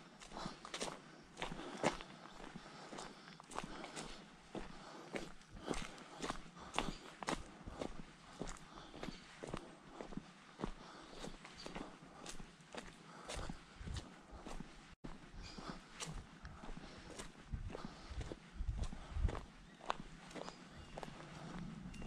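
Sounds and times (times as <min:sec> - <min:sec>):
footsteps on dirt path with stones: 0:00.0 - 0:22.0.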